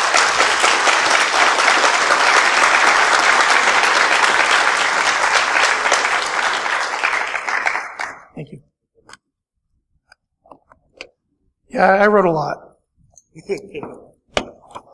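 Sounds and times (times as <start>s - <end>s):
audience applauding: 0.0s - 8.4s.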